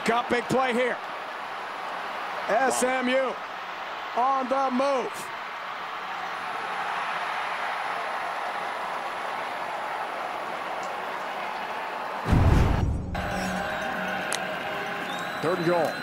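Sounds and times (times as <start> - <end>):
stadium crowd noise: 0.0 - 16.0
loud low boom: 12.3 - 13.2.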